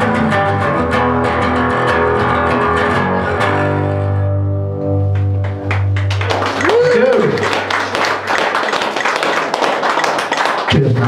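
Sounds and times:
live song: 0:00.0 - 0:08.4
audience applauding: 0:05.0 - 0:11.0.

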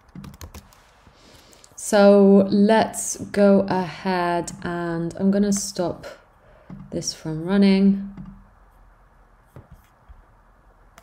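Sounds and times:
computer keyboard clicks: 0:00.0 - 0:00.8.

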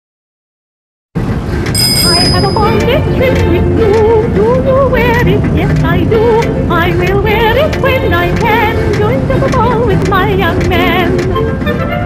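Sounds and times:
background music: 0:01.2 - 0:12.0
bicycle bell ringing: 0:01.7 - 0:03.0.

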